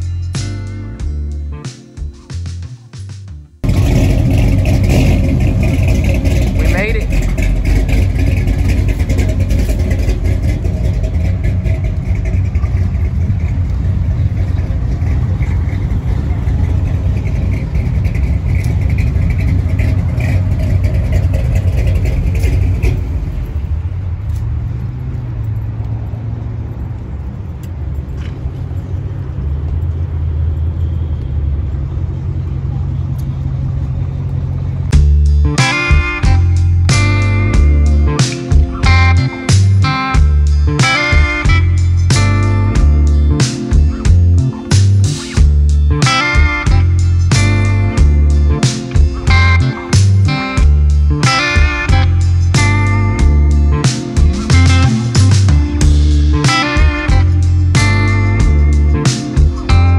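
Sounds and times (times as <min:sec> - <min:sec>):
car engines idling: 0:00.0 - 0:59.9.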